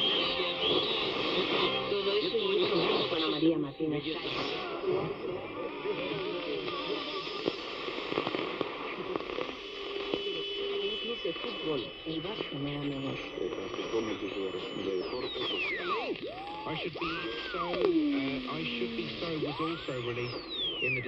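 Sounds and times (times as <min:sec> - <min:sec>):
steady whistling tones: 0:00.0 - 0:04.0, 0:09.8 - 0:21.0
faint radio speech and music: 0:00.0 - 0:21.0
radio static hiss: 0:00.0 - 0:21.0.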